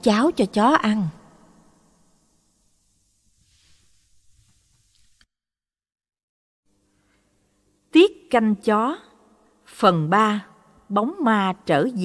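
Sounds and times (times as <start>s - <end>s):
faint low hum and hiss: 6.7s - 11.9s.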